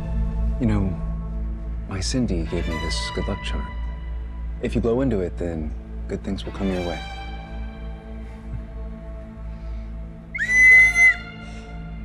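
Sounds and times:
soft background music: 0.0 - 12.0
shrill toy whistle: 10.4 - 11.5.

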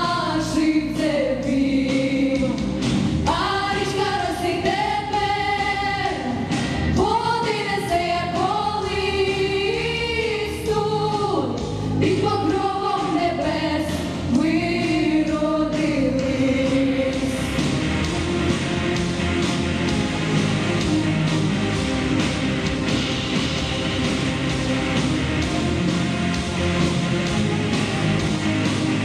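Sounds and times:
girls singing together: 0.0 - 2.6, 3.3 - 17.4
instrumental accompaniment: 17.1 - 29.0.

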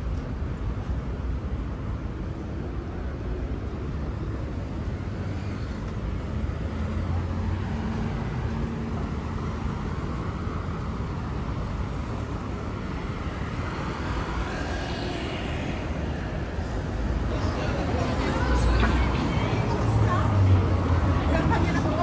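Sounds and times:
low rumble of traffic: 0.0 - 22.0
faint voices of passers-by: 0.1 - 22.0.

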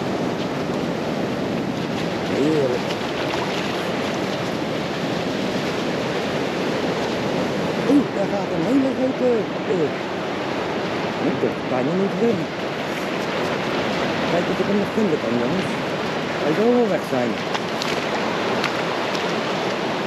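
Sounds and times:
ocean surf rushing: 0.0 - 20.0
wind on microphone: 0.0 - 20.0
person speaking: 2.3 - 2.9, 7.8 - 10.0, 11.2 - 13.6, 14.3 - 15.8, 16.4 - 17.4.

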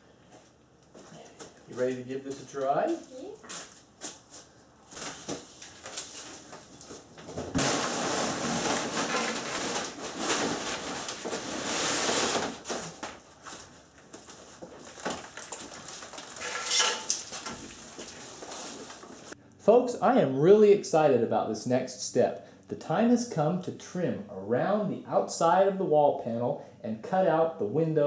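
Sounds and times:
wood scraping against floor: 7.5 - 19.4.

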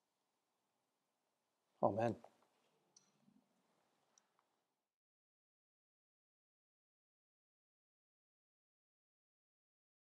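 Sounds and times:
man saying a word: 1.8 - 2.2.

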